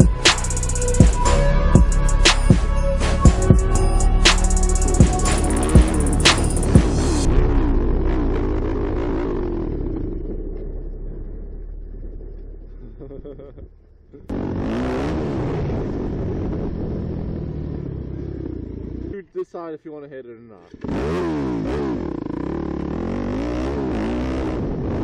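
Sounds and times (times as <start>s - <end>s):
dirt bike engine revving: 0.0s - 13.4s, 14.3s - 19.3s, 20.7s - 25.0s.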